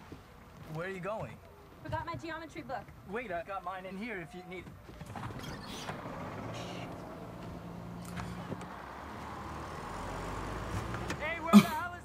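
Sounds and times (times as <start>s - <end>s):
bus engine running: 5.1s - 11.9s.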